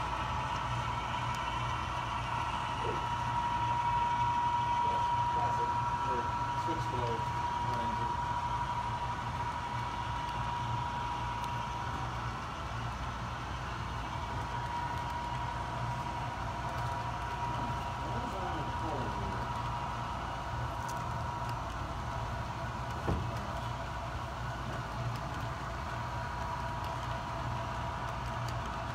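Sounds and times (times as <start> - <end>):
model train cars rolling: 0.0 - 28.9
steady high whine: 0.0 - 28.9.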